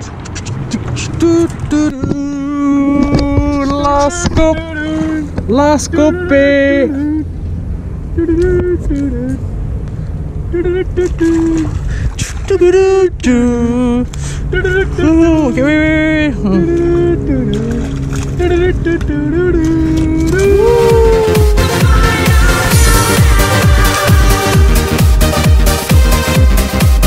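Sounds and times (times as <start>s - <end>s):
steady low hum: 0.0s - 24.8s
person making pitched calls: 20.3s - 22.8s.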